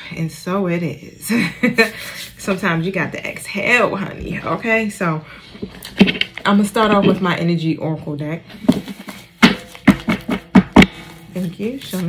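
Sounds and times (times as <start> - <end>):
cards being shuffled: 11.4 - 12.0.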